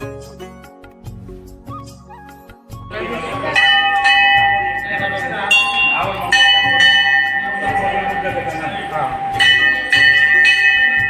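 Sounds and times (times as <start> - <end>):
low rhythmic pulse: 2.9 - 11.0
temple bell ringing: 3.0 - 11.0.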